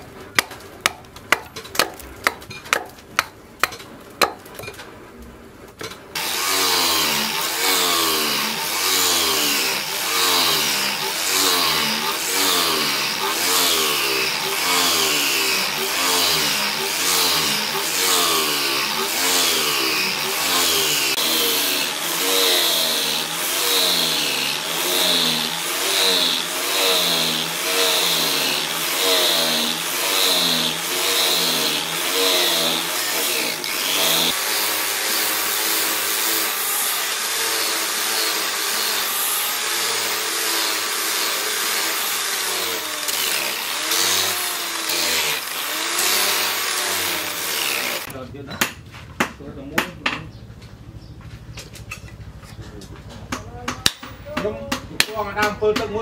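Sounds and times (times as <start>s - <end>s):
angle grinder sanding wood: 6.2s - 48.1s.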